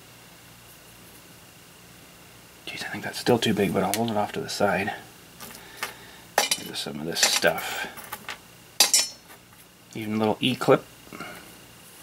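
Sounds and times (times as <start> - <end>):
metal screws clinking: 6.4 - 7.5, 8.8 - 9.3.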